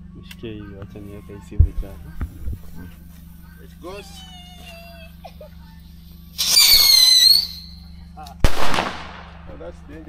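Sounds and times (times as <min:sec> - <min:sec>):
firework rocket whistling: 0:06.3 - 0:07.8
firework bang: 0:06.4 - 0:07.7, 0:08.4 - 0:09.5.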